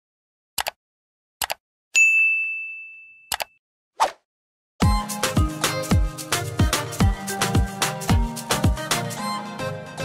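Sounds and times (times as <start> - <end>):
bell ding ringing: 2.0 - 3.3.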